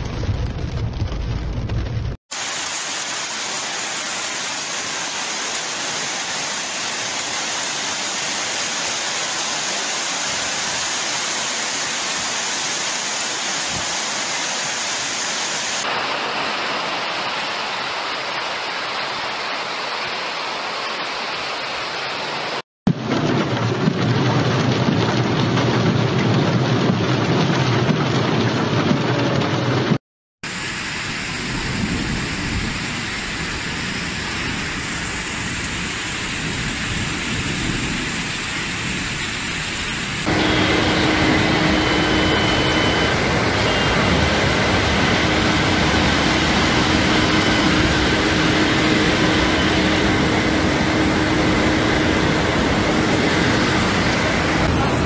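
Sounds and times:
heavy rain: 0:00.0 - 0:55.0
rushing floodwater: 0:02.3 - 0:22.6, 0:30.5 - 0:55.0.

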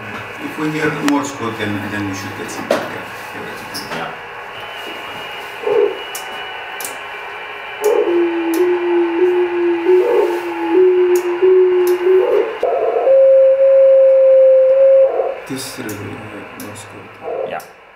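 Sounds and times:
radio beat tone: 0:07.9 - 0:13.1.

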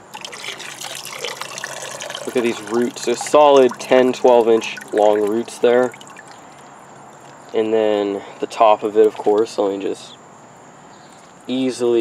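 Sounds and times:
water trickling into pond: 0:00.0 - 0:07.5, 0:08.4 - 0:10.1.

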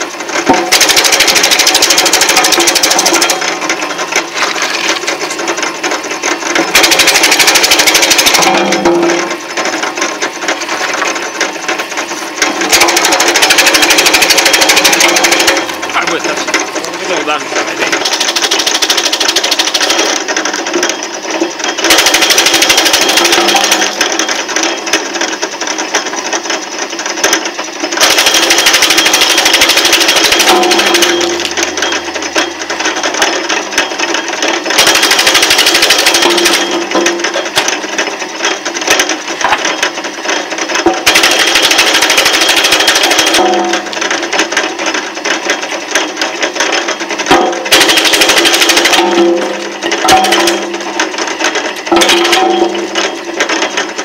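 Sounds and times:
wood chipper chipping wood: 0:00.0 - 0:54.0.

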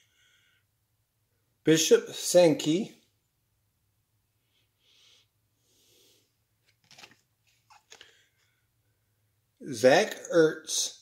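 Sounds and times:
faint breaths: 0:00.0 - 0:00.8, 0:04.4 - 0:06.4, 0:07.9 - 0:09.0
trading cards clicking and rustling: 0:06.6 - 0:08.1.

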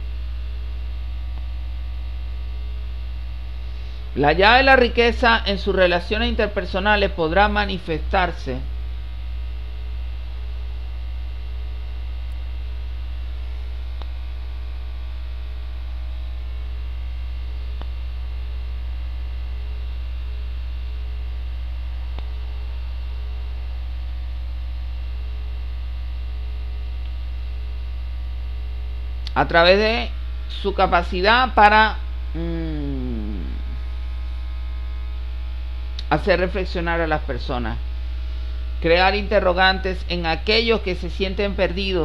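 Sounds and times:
electrical mains hum: 0:00.0 - 0:42.0.

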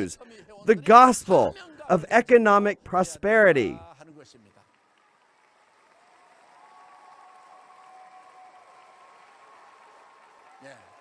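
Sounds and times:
audience applause: 0:04.7 - 0:11.0.

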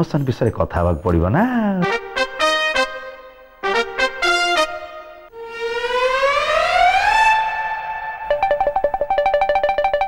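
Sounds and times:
rising siren-like tone: 0:05.3 - 0:08.9.

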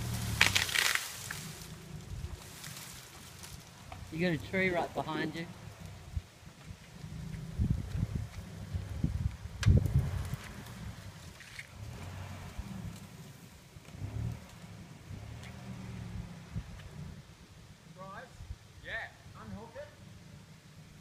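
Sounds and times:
vehicle engine at low revs: 0:00.0 - 0:21.0.

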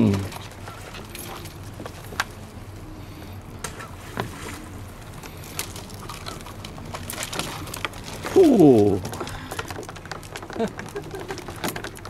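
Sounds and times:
low steady hum: 0:00.0 - 0:12.0
crab shells tapping on wooden boards: 0:06.6 - 0:12.0.

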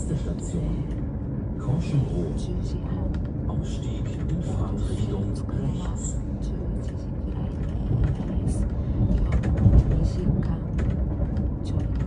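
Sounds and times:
train rumbling from inside carriage: 0:00.0 - 0:12.0.

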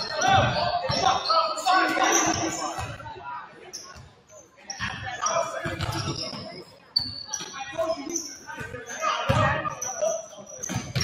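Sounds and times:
sneaker squeaks: 0:00.0 - 0:03.0, 0:03.6 - 0:11.0
players' voices: 0:00.0 - 0:11.0
basketballs bouncing on wooden floor: 0:10.6 - 0:11.0.

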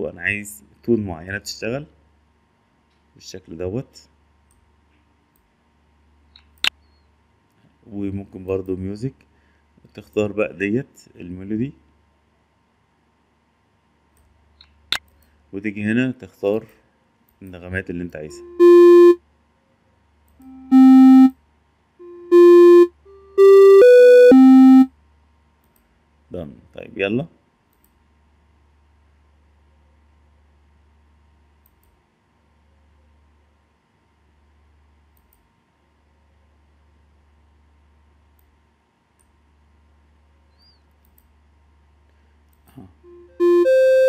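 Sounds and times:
buzzy synthesized notes: 0:18.3 - 0:19.2, 0:20.4 - 0:21.3, 0:22.0 - 0:24.9, 0:43.1 - 0:44.0
electronic beeping melody: 0:18.3 - 0:19.2, 0:20.4 - 0:21.3, 0:22.0 - 0:24.9, 0:43.1 - 0:44.0.

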